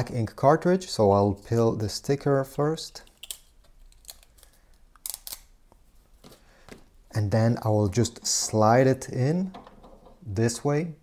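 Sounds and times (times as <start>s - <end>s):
tape peeling clicks and rustles: 3.0s - 5.8s.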